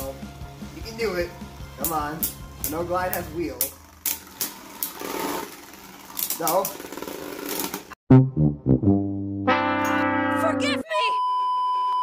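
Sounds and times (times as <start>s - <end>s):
spinning tops whirring: 1.4s - 8.0s
spinning tops clacking: 1.8s - 8.0s.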